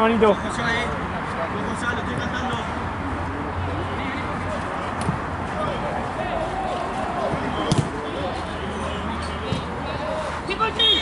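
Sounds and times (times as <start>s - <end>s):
distant players shouting: 4.5s - 8.9s
ball being kicked thud: 7.3s - 7.9s.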